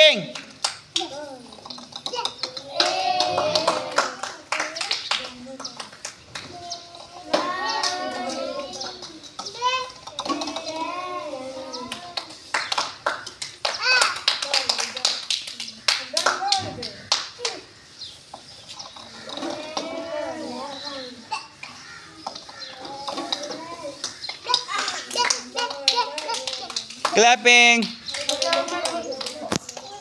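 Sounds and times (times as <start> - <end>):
hand claps: 0.2 - 17.7, 21.6 - 30.0
children talking and calling out: 0.8 - 30.0.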